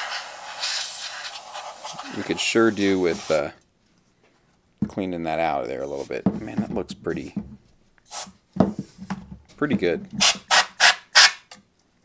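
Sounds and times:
compressed air spraying hiss: 0:00.0 - 0:03.5, 0:08.1 - 0:08.3.

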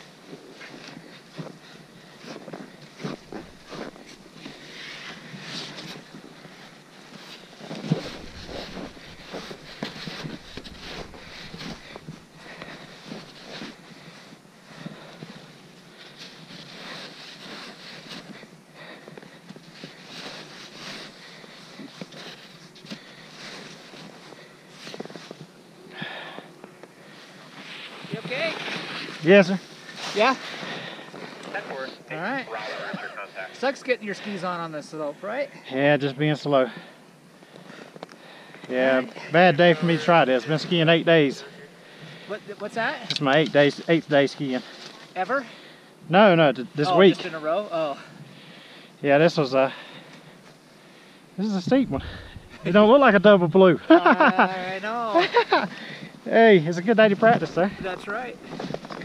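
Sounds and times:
skis and boots crunching snow: 0:00.0 - 0:26.5, 0:27.1 - 0:34.5, 0:51.4 - 0:59.0
ski gear clatter: 0:02.2 - 0:13.8, 0:57.2 - 0:59.0
heavy thump: 0:51.7 - 0:52.7.

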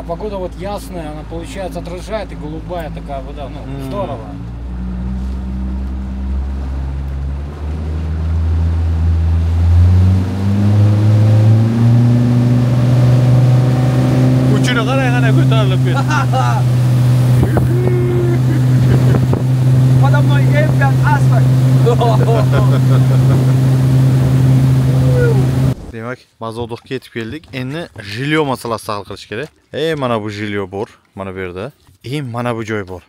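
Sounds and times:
motorboat engine accelerating: 0:00.0 - 0:25.9
passengers shouting: 0:24.9 - 0:25.8.

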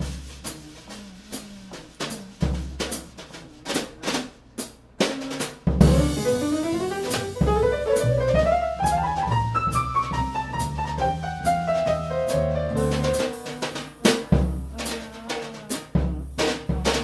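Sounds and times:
snare and bass drum strokes: 0:00.0 - 0:17.0
piano rising run: 0:05.9 - 0:13.8.

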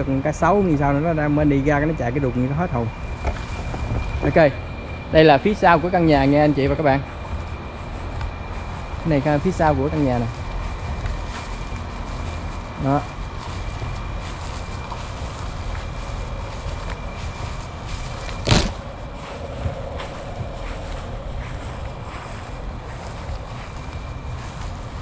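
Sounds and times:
steady low rumble: 0:00.0 - 0:25.0
wind buffeting microphone: 0:00.0 - 0:25.0
sharp knock: 0:18.4 - 0:18.8.

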